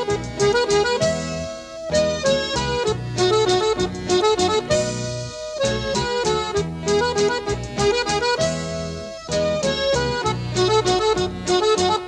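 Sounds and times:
accordion melody: 0.0s - 12.0s
bass and rhythm accompaniment: 0.0s - 12.0s.

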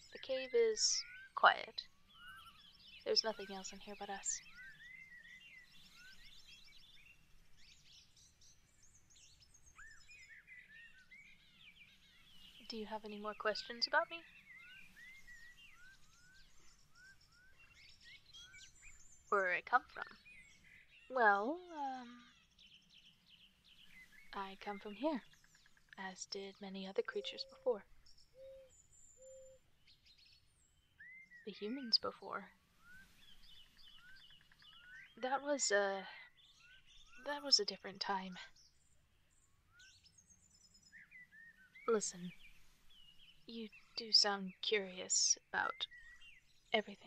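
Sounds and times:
birds chirping and whistling: 0.0s - 1.4s, 2.0s - 26.0s, 27.1s - 32.1s, 32.8s - 35.2s, 38.6s - 46.6s
faint forest ambience: 0.0s - 47.0s
bird hooting: 28.4s - 29.6s.

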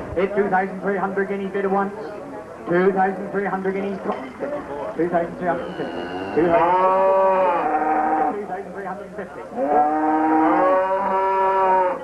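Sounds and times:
cow mooing: 5.8s - 8.4s, 9.6s - 12.0s.

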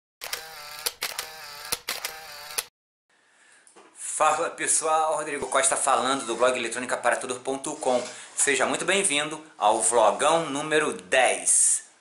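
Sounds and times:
short buzzing tones: 0.2s - 2.7s.

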